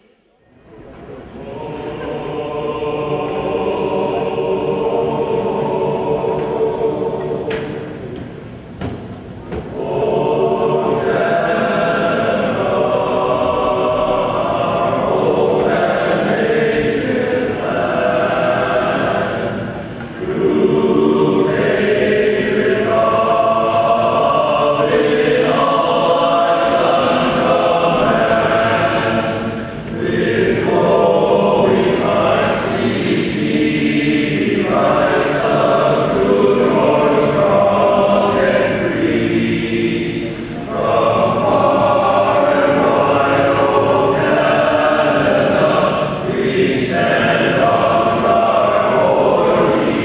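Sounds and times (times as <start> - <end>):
male choir singing unaccompanied: 1.0 - 50.0.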